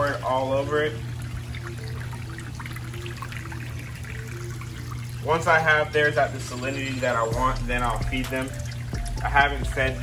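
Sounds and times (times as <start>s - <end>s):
steady low hum: 0.0s - 10.0s
water trickling and dripping: 0.0s - 10.0s.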